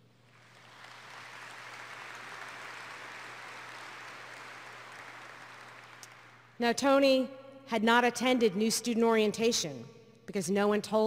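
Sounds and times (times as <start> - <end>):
audience applause: 0.3 - 6.5.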